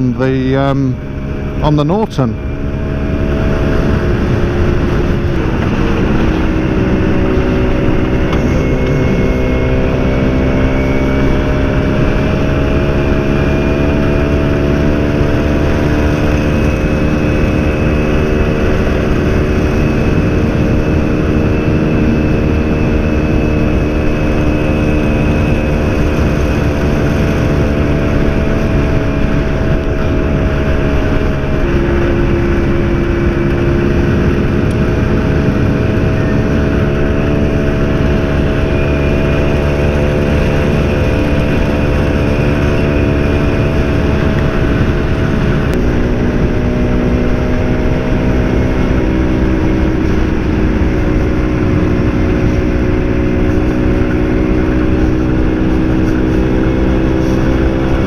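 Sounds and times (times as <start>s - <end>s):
motorcycle engine running: 0.0s - 58.0s
wind noise on microphone: 2.4s - 58.0s.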